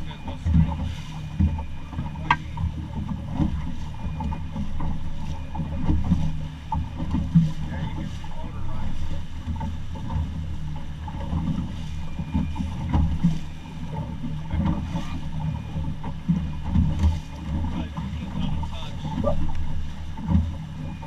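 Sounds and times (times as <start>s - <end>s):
hull thumping on waves: 0.0s - 21.0s
motorboat rumbling: 0.0s - 21.0s.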